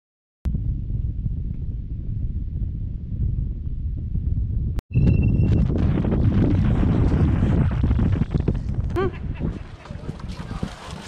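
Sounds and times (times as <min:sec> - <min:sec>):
wind buffeting microphone: 0:00.5 - 0:11.0.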